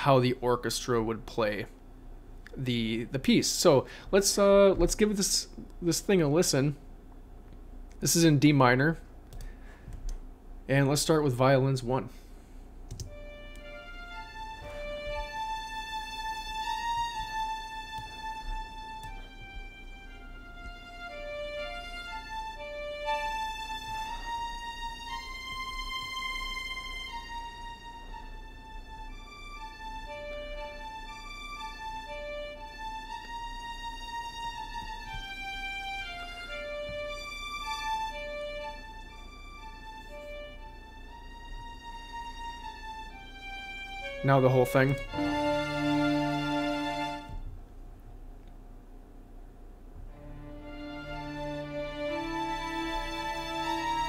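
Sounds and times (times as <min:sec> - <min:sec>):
violin section playing slow melody: 0:12.9 - 0:47.6, 0:50.0 - 0:54.0.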